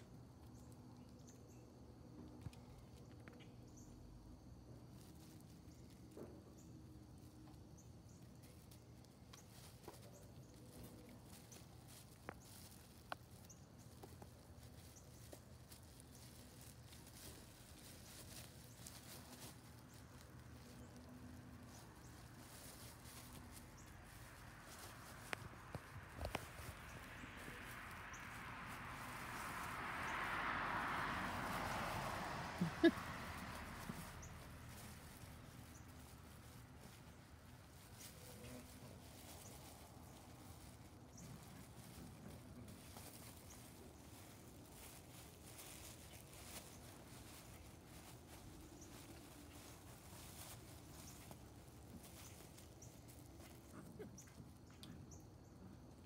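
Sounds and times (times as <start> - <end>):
puppies scuffling on grass: 2.3 - 56.0
plastic mat rustling: 8.4 - 29.8.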